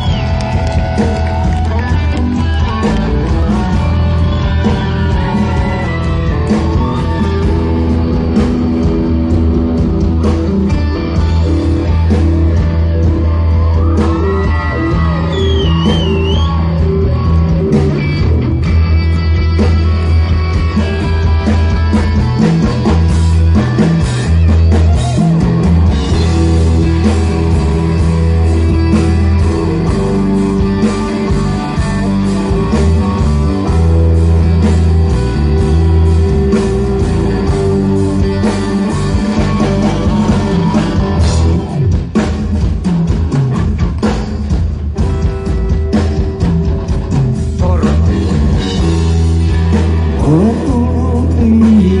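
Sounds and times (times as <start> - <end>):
bass line: 0.0 - 52.0
drums: 0.0 - 52.0
electric guitars: 0.0 - 52.0.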